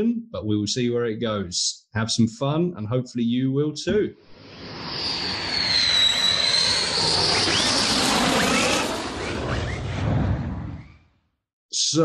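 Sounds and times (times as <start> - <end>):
jet aircraft rush and whine: 4.3 - 11.1.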